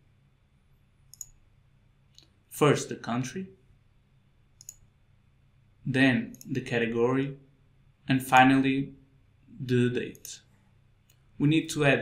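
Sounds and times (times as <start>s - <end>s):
computer mouse click: 1.1s - 1.4s, 4.6s - 4.9s, 6.3s - 6.6s, 10.1s - 10.4s.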